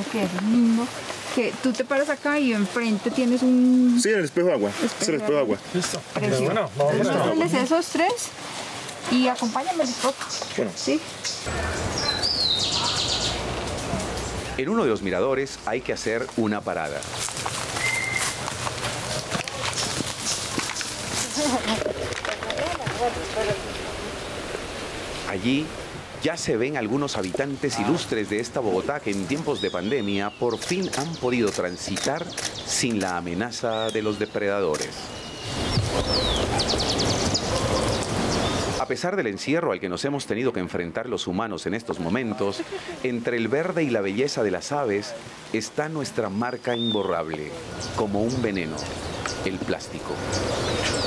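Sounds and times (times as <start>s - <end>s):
songbird singing: 0.0s - 8.2s, 9.0s - 25.6s, 26.2s - 40.4s, 43.6s - 51.0s
outdoor background noise: 0.0s - 51.0s
bird whistle and sharp high notes: 17.8s - 18.4s.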